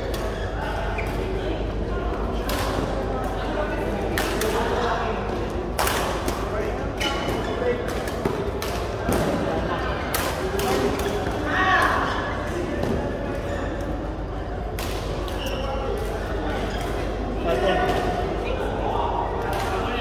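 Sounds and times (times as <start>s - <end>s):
badminton rackets hitting shuttlecock: 7.0s - 9.4s.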